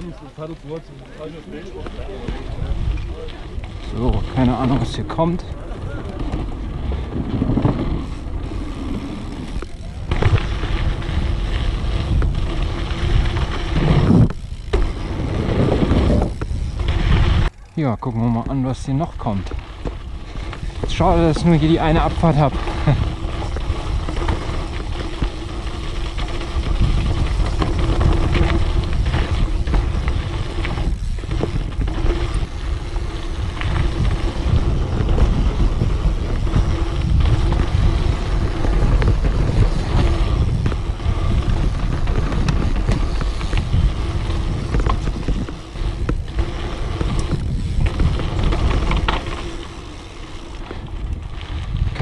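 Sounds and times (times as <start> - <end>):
bike clattering over bumps: 0.0 - 52.0
bike tyres rolling on dirt: 0.0 - 52.0
wind on microphone: 2.0 - 17.7, 19.1 - 52.0.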